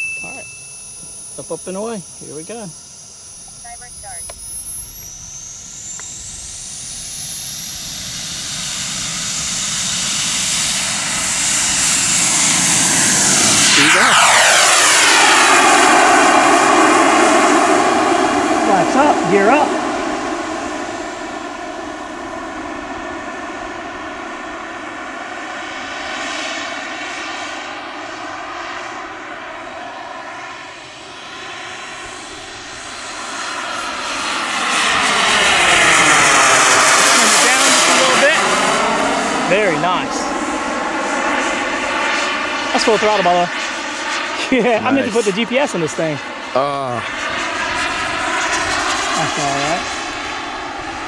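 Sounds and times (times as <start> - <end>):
jet engine roar: 0.0 - 51.0.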